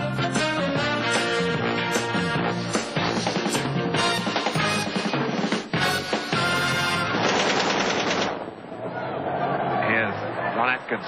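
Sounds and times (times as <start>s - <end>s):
machine-gun fire: 7.0s - 8.5s.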